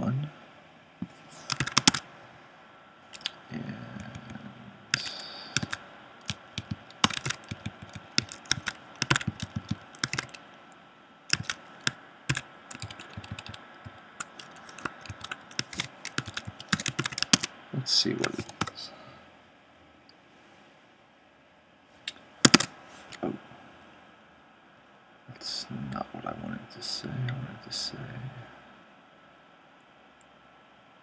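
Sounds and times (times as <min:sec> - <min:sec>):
typing on computer keyboard: 0:01.4 - 0:02.0, 0:05.0 - 0:10.4, 0:11.3 - 0:17.5, 0:18.2 - 0:18.8, 0:22.5 - 0:22.7.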